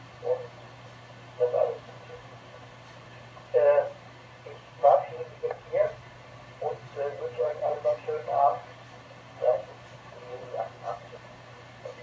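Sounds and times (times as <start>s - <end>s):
steady low hum: 0.0s - 12.0s
voice over radio speaker: 0.2s - 0.7s, 1.3s - 2.7s, 3.5s - 6.0s, 6.6s - 12.0s.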